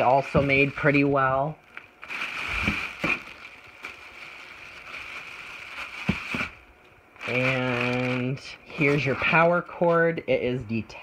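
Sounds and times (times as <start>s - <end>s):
plastic wrap rustling: 0.0s - 10.2s.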